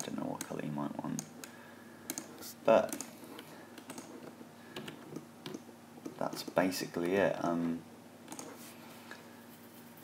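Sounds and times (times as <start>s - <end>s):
keyboard clicks: 2.1s - 3.1s, 3.8s - 4.1s, 8.3s - 8.5s.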